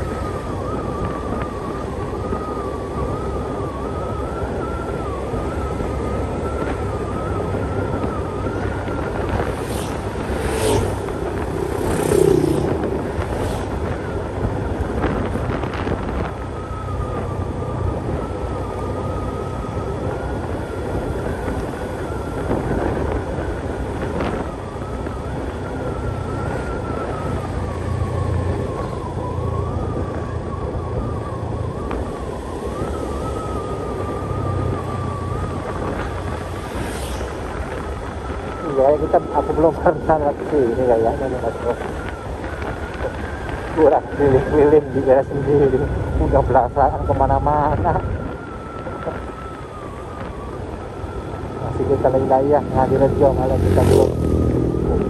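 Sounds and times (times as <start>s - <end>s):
motorbikes passing: 0.0s - 55.0s
road rumble: 0.0s - 55.0s
vehicle engine hum: 0.0s - 55.0s.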